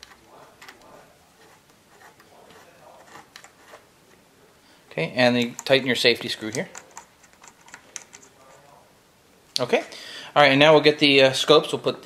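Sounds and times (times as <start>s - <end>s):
small clicks and handling noise: 5.4s - 5.8s, 6.4s - 8.4s.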